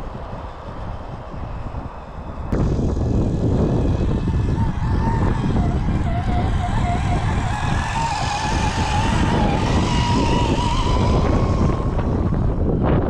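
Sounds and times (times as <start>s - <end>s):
electric motor and gears whining: 0.0s - 13.0s
wind buffeting microphone: 0.0s - 13.0s.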